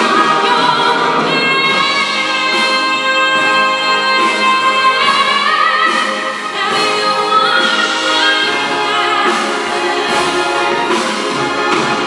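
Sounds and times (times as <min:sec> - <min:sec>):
woman singing: 0:00.0 - 0:11.0
orchestra playing: 0:00.0 - 0:12.0.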